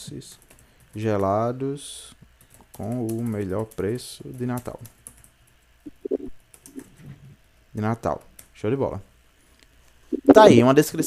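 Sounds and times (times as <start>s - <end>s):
computer keyboard typing: 0.2s - 1.3s, 2.4s - 7.0s, 8.1s - 8.5s.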